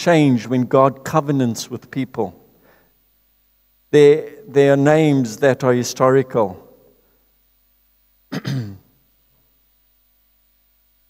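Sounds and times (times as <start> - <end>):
man clearing his throat: 8.3 - 8.9.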